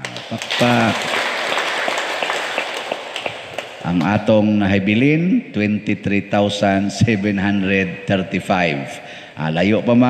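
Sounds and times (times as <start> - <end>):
hand clapping: 0.0 - 4.2.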